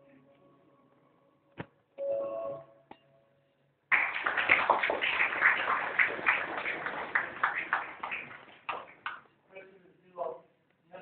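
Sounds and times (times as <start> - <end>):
audience applauding: 3.9 - 9.2.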